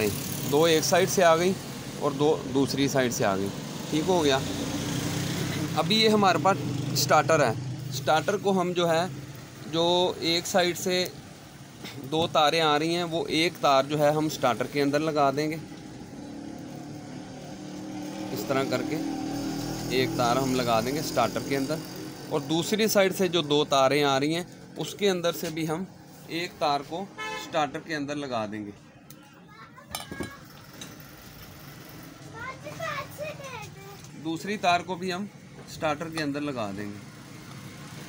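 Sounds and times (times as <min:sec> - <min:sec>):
children calling: 0:29.0 - 0:30.8, 0:32.2 - 0:34.2.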